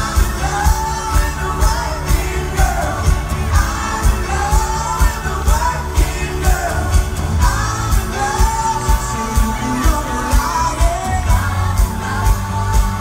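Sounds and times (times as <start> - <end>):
person singing: 0.0 - 13.0
pop-rock band playing live: 0.0 - 13.0
steady drum beat: 0.0 - 13.0.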